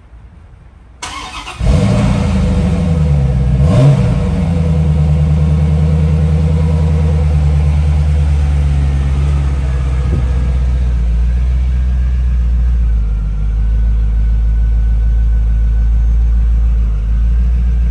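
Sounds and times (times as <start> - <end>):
engine revving: 1.0 - 13.6
car engine starting and idling: 1.0 - 17.9.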